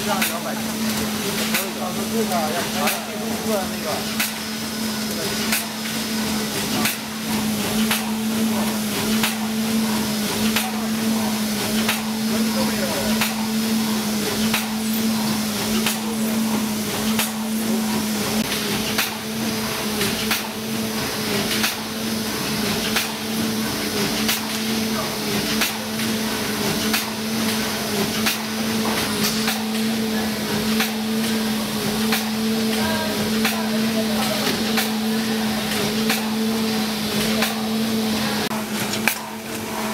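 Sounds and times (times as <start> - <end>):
packing machine motor hum: 0.0 - 39.9
sharp machine clacks: 0.0 - 39.9.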